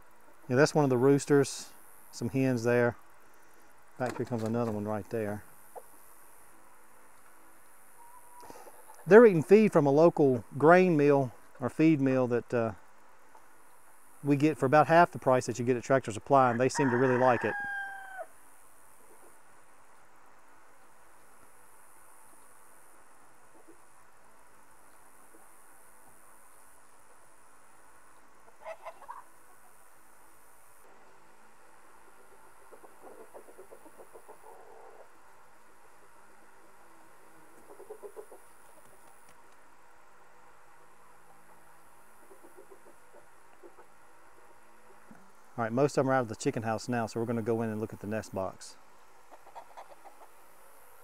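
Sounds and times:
chicken call: 0:08.0 - 0:09.1, 0:16.6 - 0:18.3, 0:28.5 - 0:29.8
soft chicken clucks: 0:08.0 - 0:09.1, 0:28.5 - 0:29.8, 0:32.2 - 0:35.2, 0:37.3 - 0:39.4, 0:41.2 - 0:44.0, 0:49.2 - 0:50.4.

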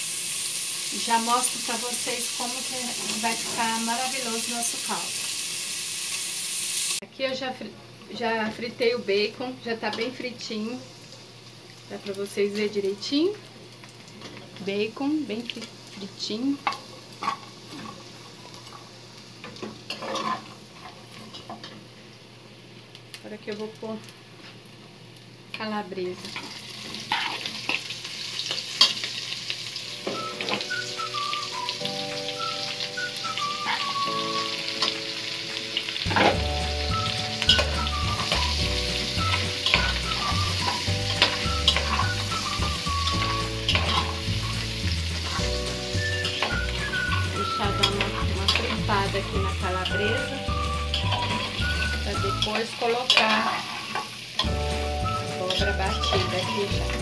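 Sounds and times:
sausage sizzling in fat: 0:00.0 - 0:57.0
background music melody: 0:29.8 - 0:53.0, 0:54.5 - 0:57.0.

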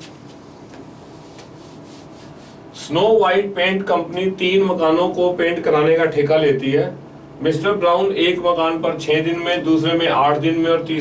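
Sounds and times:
man talking: 0:02.8 - 0:11.0.

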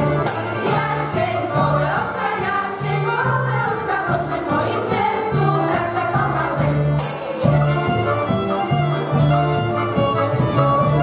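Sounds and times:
women's choir singing: 0:00.0 - 0:07.0
violin: 0:00.0 - 0:11.0.

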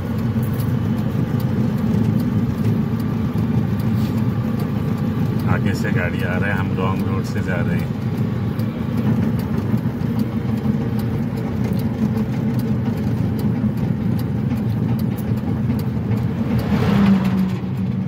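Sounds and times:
tyre and road rumble: 0:00.0 - 0:18.0
oncoming truck passing: 0:14.1 - 0:18.0.

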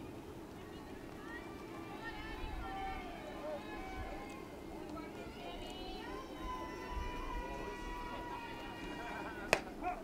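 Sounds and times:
faint background voices: 0:00.0 - 0:10.0
ball smacking into mitt: 0:09.5 - 0:09.7.

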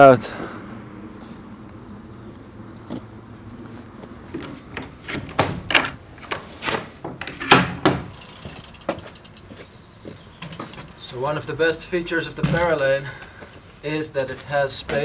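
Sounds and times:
metal door latch rattling: 0:04.7 - 0:06.4, 0:07.2 - 0:08.2.

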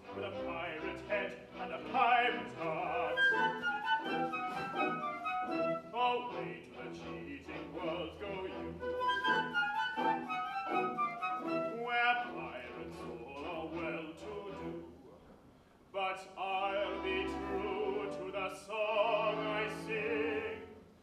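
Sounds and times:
orchestra playing: 0:00.0 - 0:14.8, 0:16.5 - 0:21.0.

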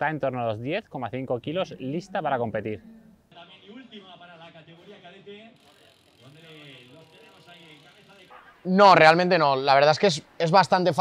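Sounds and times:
bike freewheel ticking: 0:05.6 - 0:08.4.

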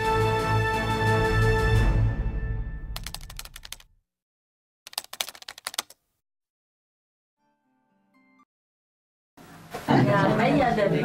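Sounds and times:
background music: 0:00.0 - 0:03.3
rapid keyboard typing clicks: 0:03.0 - 0:03.9, 0:04.9 - 0:06.0.

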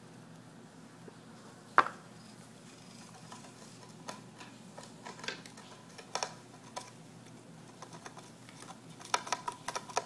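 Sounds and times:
gerbil gnawing on wood: 0:02.8 - 0:10.0.

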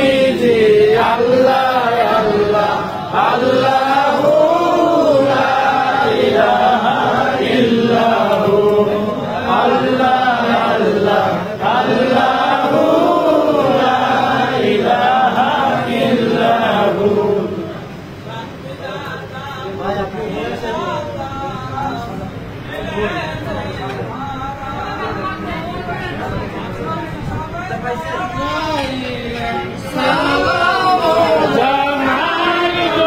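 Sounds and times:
men chanting together: 0:00.0 - 0:22.1, 0:29.8 - 0:33.0.

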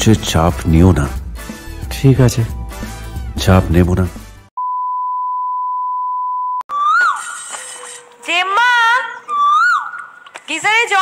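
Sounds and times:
sliding whistle sound effect: 0:06.7 - 0:08.1.

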